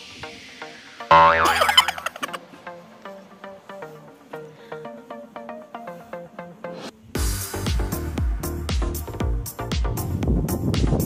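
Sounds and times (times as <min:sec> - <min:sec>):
light plucked background music: 0:00.2 - 0:09.1
cartoon boing: 0:01.1 - 0:02.1.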